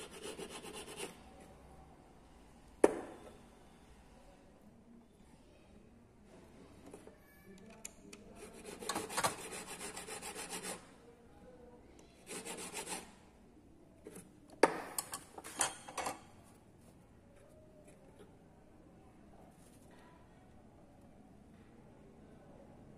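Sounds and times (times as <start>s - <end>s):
hand file scraping metal: 0.0s - 1.1s, 8.4s - 10.8s, 12.3s - 13.1s.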